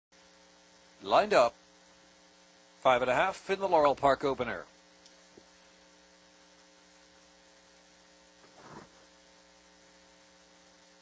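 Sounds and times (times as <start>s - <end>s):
low electrical hum: 0.2s - 11.0s.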